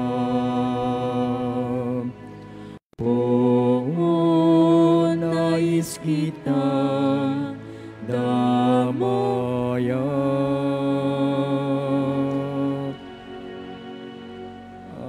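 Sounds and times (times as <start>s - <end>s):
slow church hymn singing: 0.0s - 15.0s
sustained accompaniment chords: 0.0s - 15.0s.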